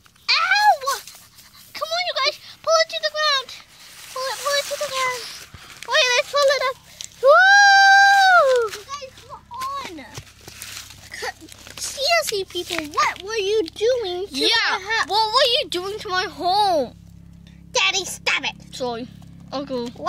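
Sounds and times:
child squealing: 0.3 - 1.1, 7.2 - 9.2.

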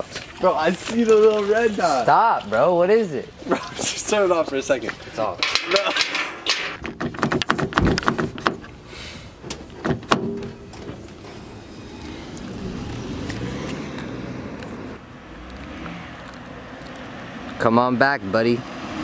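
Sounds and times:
car door clicks and knocks: 6.8 - 8.7
car pulling away: 10.5 - 19.0.

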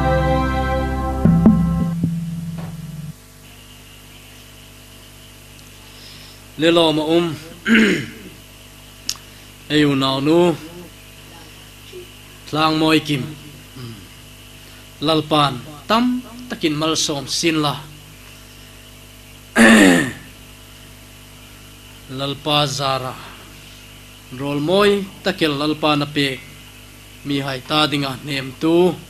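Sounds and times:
steady mains hum: 0.0 - 29.0
man clearing his throat: 7.6 - 8.4, 13.8 - 14.1, 19.6 - 20.3.

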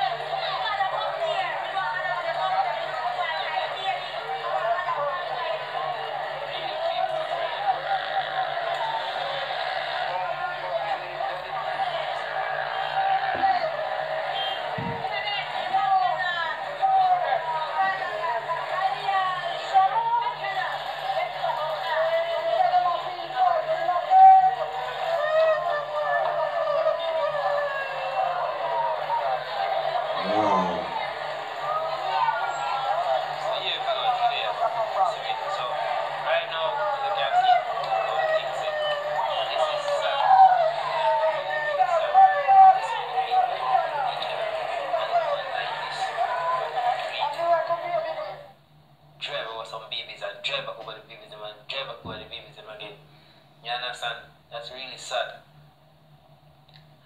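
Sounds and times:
voices talking over each other: 0.0 - 48.4.

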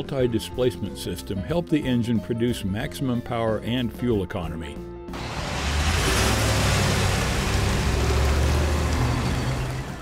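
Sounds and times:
pickup truck engine: 5.1 - 10.0
tyre and road noise: 5.2 - 10.0.

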